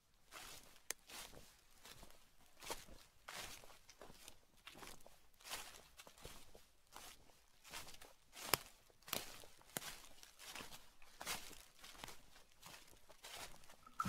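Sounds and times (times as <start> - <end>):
footsteps on dry leaves: 0.3 - 14.0.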